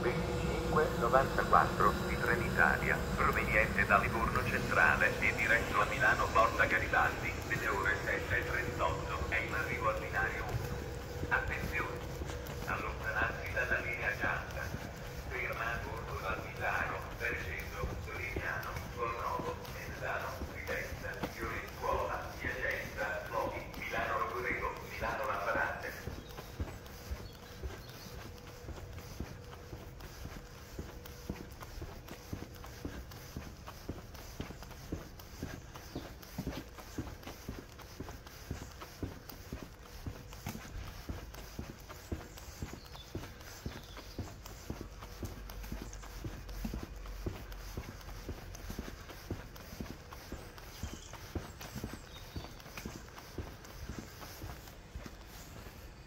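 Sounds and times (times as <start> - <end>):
indistinct voices: 0.0 - 27.0
footsteps on pavement: 0.0 - 56.0.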